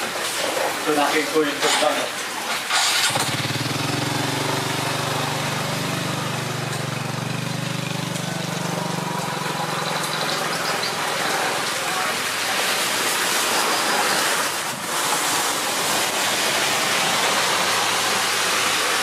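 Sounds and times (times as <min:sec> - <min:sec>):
truck engine running: 0:03.0 - 0:12.2.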